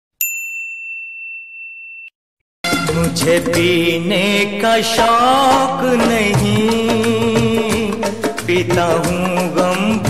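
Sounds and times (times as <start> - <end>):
bell-like ding: 0.2 - 2.2.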